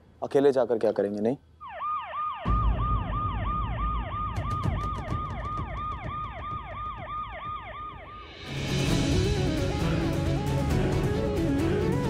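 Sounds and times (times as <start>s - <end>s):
police siren yelping: 1.6s - 8.4s.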